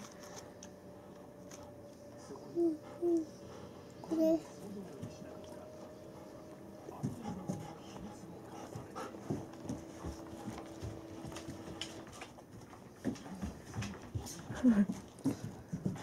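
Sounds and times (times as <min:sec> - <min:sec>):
dog panting: 0:00.1 - 0:16.0.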